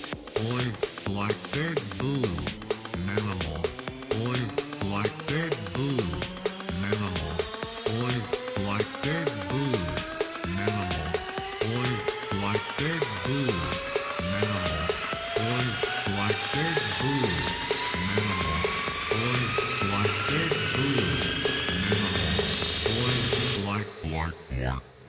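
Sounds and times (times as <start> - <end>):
techno beat with kick and bass: 0.0 - 24.9
whining synth sweep: 2.1 - 25.0.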